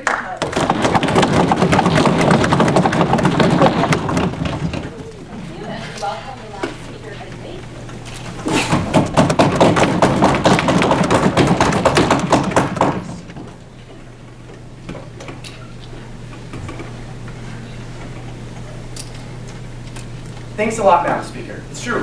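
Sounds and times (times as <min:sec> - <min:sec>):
audience applause: 0:00.0 - 0:05.8
low room hum: 0:00.0 - 0:22.0.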